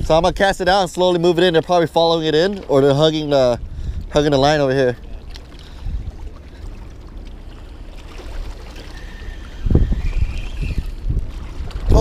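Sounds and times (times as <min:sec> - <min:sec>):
wind buffeting microphone: 0:00.0 - 0:12.0
faint thin whistling tone: 0:08.9 - 0:11.0.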